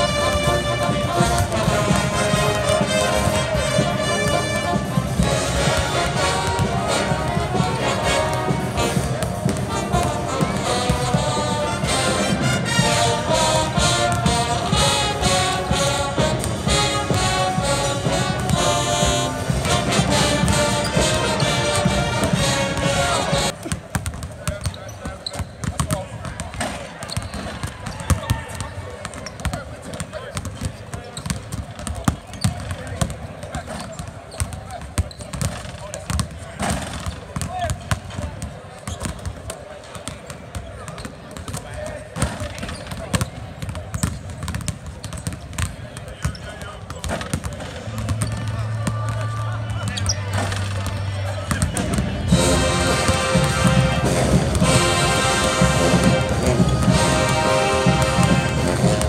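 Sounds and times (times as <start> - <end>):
basketballs bouncing on hardwood: 0.0 - 11.6, 13.6 - 52.3, 55.5 - 59.0
players' voices: 0.0 - 59.0.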